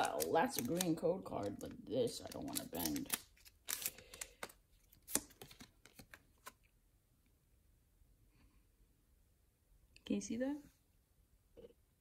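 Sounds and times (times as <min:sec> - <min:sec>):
cards flicked and snapping: 0:02.3 - 0:06.6.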